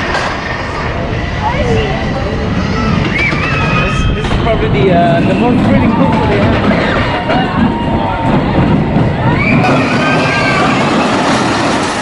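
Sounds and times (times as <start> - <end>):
roller coaster rumbling on track: 0.0 - 12.0.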